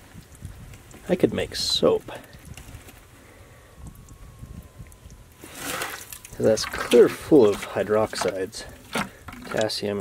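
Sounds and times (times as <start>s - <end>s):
bucket scooping water: 5.4s - 10.0s
water splashing: 5.4s - 10.0s.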